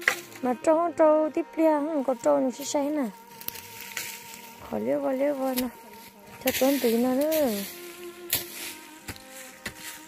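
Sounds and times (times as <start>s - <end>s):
person speaking: 6.4s - 7.8s.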